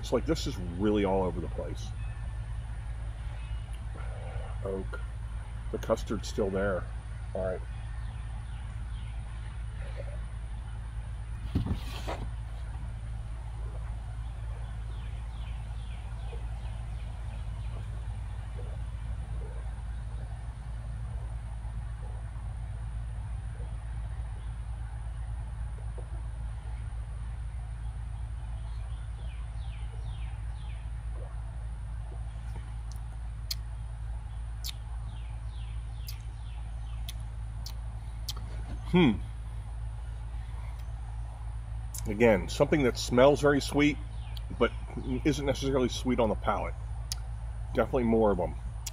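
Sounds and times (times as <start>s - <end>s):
steady low hum: 0.0s - 48.9s.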